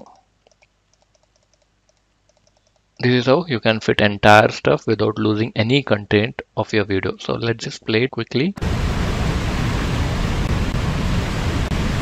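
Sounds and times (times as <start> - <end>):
faint computer keyboard clicking: 0.0 - 3.0.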